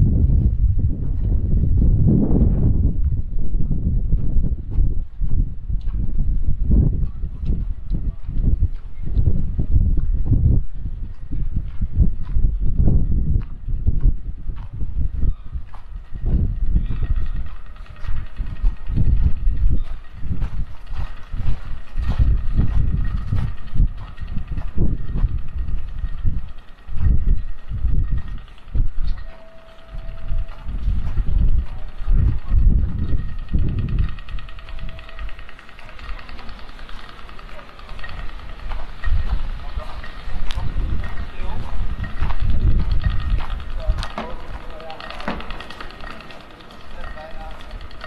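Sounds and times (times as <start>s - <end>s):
low rumbling thuds on microphone: 0.0s - 29.2s, 30.1s - 34.8s, 38.1s - 46.0s
faint city hum: 0.0s - 48.0s.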